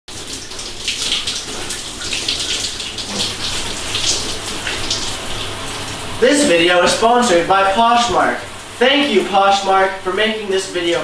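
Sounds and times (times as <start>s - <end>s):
water splashing on person: 0.1s - 6.2s
shower spraying water: 0.1s - 11.0s.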